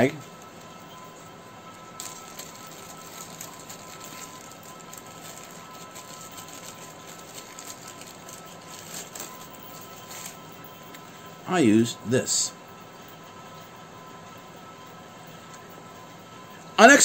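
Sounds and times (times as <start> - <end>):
plastic bag crinkling: 1.9 - 10.5.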